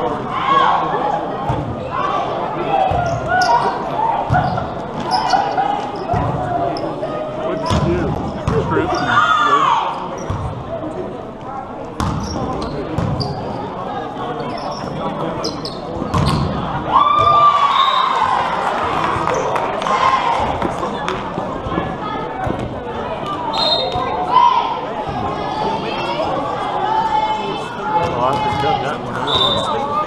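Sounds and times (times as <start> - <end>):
many people talking: 0.0 - 30.0.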